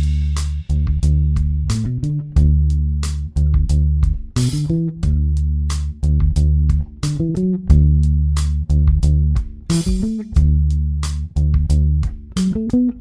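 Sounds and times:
electric bass notes: 0:00.0 - 0:13.0.

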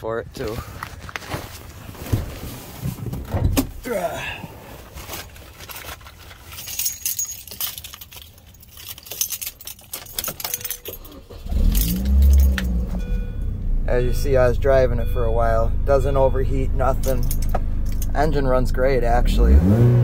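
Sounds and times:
keys jangling: 0:06.3 - 0:13.0, 0:16.9 - 0:18.2
car engine starting and running: 0:10.5 - 0:20.0.

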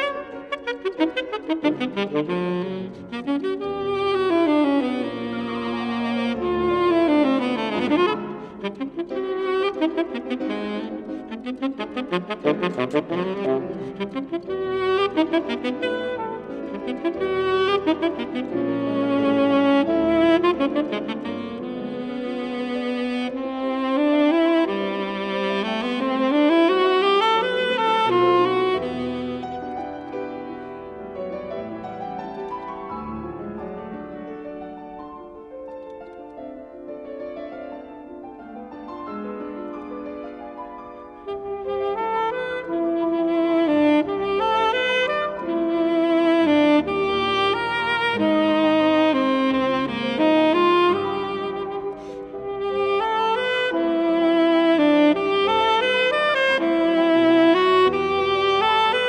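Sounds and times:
tenor saxophone: 0:00.0 - 0:34.6, 0:40.9 - 0:59.0
grand piano accompaniment: 0:00.0 - 0:59.0.

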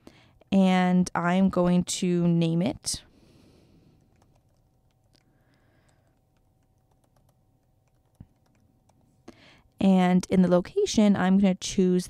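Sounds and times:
faint keyboard typing: 0:03.8 - 0:10.5.

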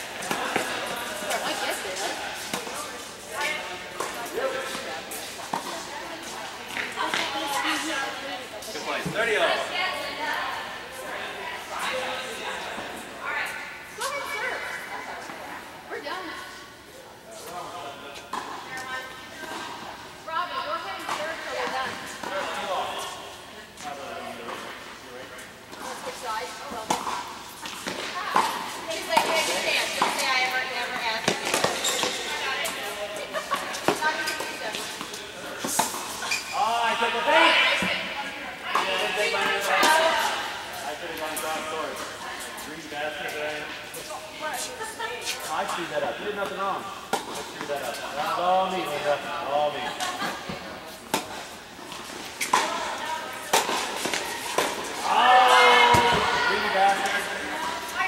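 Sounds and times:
players' voices: 0:00.0 - 0:58.0
tennis balls hit by rackets: 0:00.2 - 0:07.8, 0:25.7 - 0:36.3, 0:46.4 - 0:48.1, 0:50.0 - 0:58.0
tennis balls bouncing: 0:26.7 - 0:36.2, 0:50.0 - 0:55.1.

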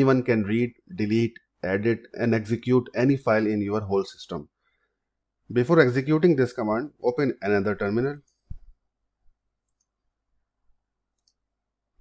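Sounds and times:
computer mouse clicks: 0:09.6 - 0:10.0, 0:11.1 - 0:11.5.

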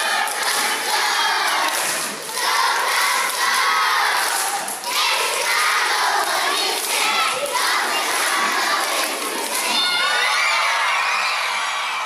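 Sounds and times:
crowd of children shouting and cheering: 0:00.0 - 0:12.0.

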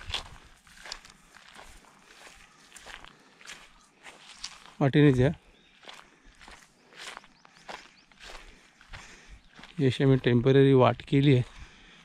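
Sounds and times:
footsteps on dirt path and leaves: 0:00.0 - 0:12.0.

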